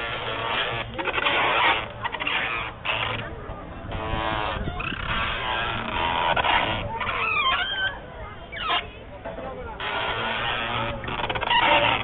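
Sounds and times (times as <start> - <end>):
merry-go-round squealing: 3.9 - 9.0.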